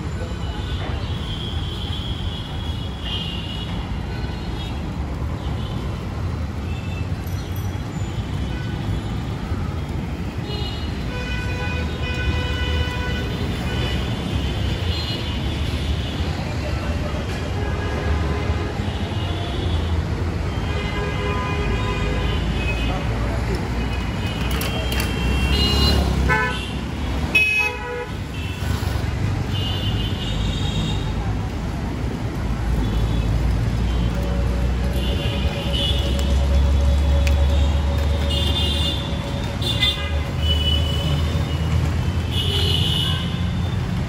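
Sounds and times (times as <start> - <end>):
street traffic rumbling: 0.0 - 44.0.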